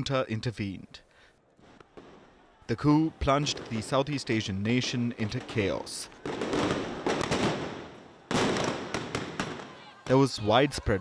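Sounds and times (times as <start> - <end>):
loud bangs with long echo: 3.4 - 10.1.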